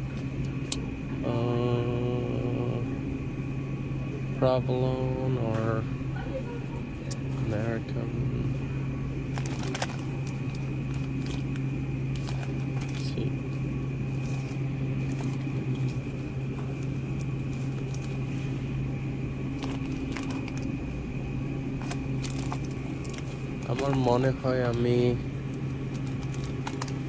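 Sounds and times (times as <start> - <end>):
refrigerator electrical hum: 0.0 - 27.0
plastic packaging crinkling: 9.2 - 13.3, 14.0 - 18.5, 19.5 - 20.8, 21.7 - 24.9, 25.6 - 27.0.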